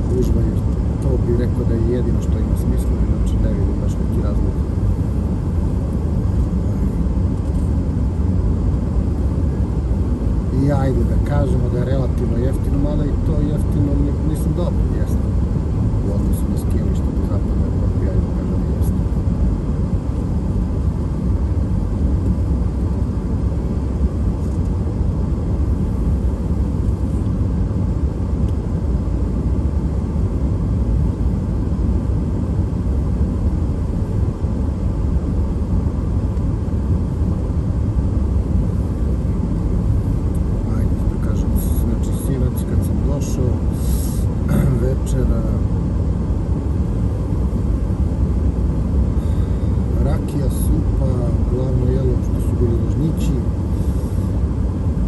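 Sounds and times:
car engine: 0.0s - 55.0s
road and tyre rumble: 0.0s - 55.0s.

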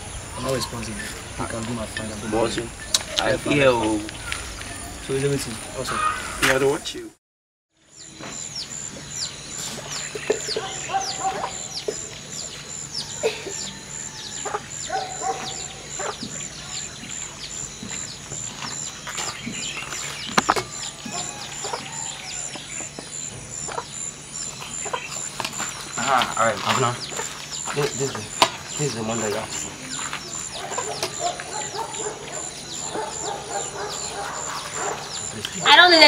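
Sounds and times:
birds chirping: 0.0s - 7.2s, 7.8s - 36.0s.

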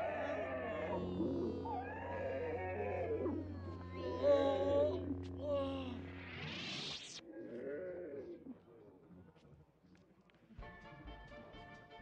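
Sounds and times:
creature moaning: 0.0s - 6.5s, 7.3s - 8.6s
lightsaber humming: 0.0s - 7.3s.

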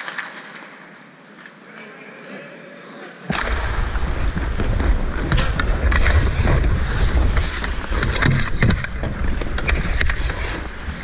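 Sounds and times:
hockey sticks and puck clicking: 0.0s - 1.6s, 4.5s - 11.0s
ice skates scraping ice: 4.1s - 11.0s.

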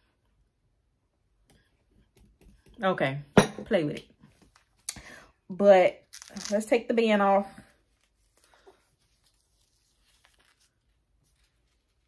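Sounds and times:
faint rustles of hair: 6.3s - 12.0s.

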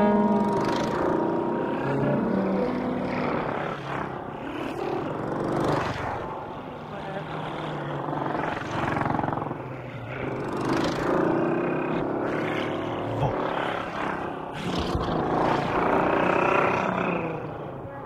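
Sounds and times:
rushing engine-like noise: 0.0s - 18.0s.

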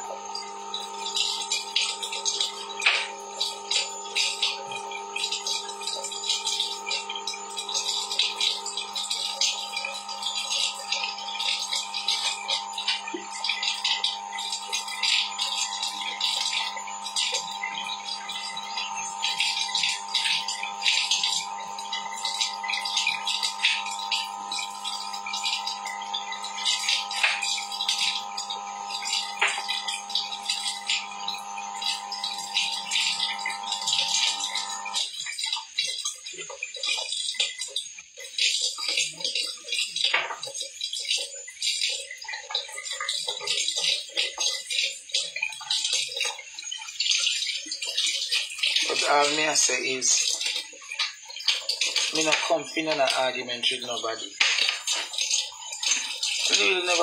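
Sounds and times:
steady hum: 0.0s - 35.2s, 48.7s - 50.4s, 51.6s - 57.0s.

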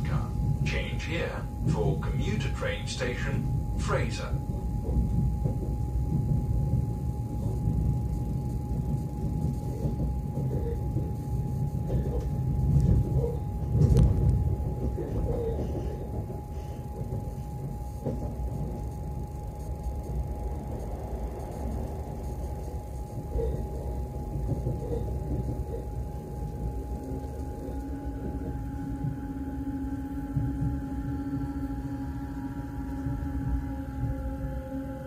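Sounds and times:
faint constant whine: 0.0s - 35.0s
high electric whine: 0.0s - 35.0s
train running rumble: 0.0s - 35.0s.

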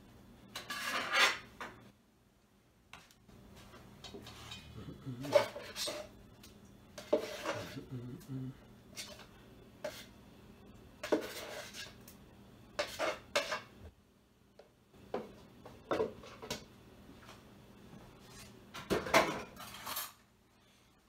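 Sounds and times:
knife scraping metal bowl: 0.6s - 1.5s, 4.0s - 6.2s, 7.0s - 7.9s, 8.9s - 10.1s, 11.0s - 12.0s, 12.8s - 13.7s.

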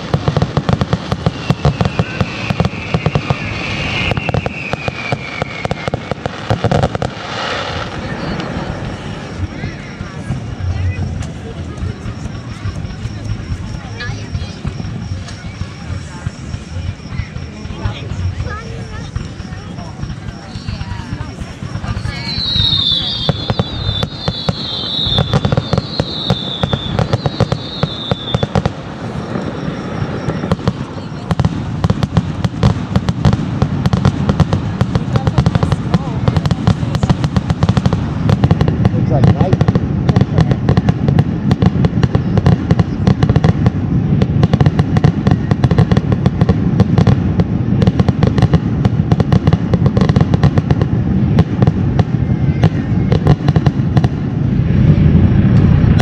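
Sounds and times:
firework whistling: 0.0s - 56.0s
fireworks bangs and crackles: 0.0s - 56.0s.

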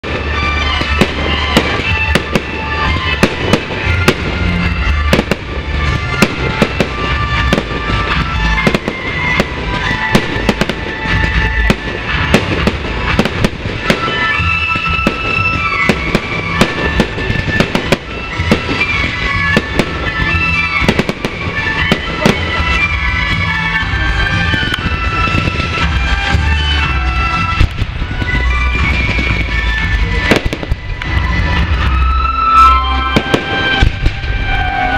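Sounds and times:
fireworks bursting: 0.0s - 34.9s
music playing: 0.0s - 34.9s.

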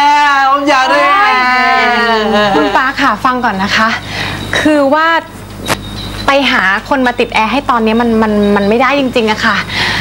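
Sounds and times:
woman speaking: 0.0s - 5.3s, 6.3s - 9.7s.

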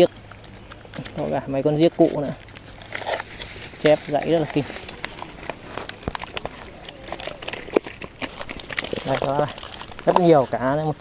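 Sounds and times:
fish flapping in a plastic basin: 0.0s - 11.0s.

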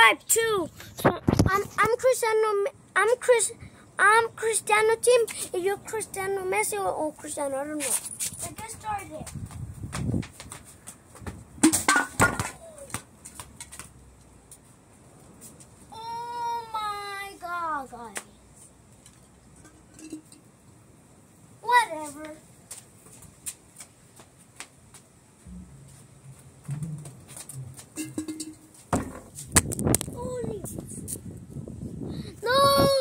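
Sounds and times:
ball kicked dull thud: 11.2s - 12.7s, 28.9s - 29.9s
ball hitting hard surfaces: 11.2s - 13.9s, 25.5s - 30.0s
faint scuffs and taps: 22.0s - 25.1s.

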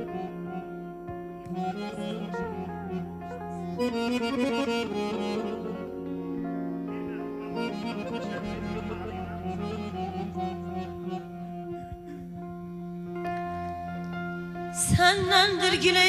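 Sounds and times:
accordion music: 0.0s - 16.0s
steady bass: 7.3s - 13.2s.

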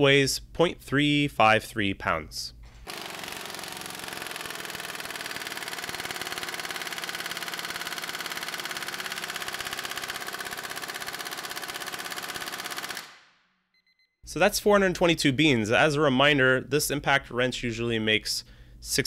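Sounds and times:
impact wrench hammering: 2.7s - 13.2s.

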